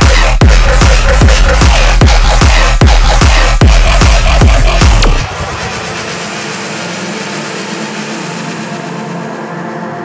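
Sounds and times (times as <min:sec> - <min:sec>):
droning synth texture: 0:03.6 - 0:10.0.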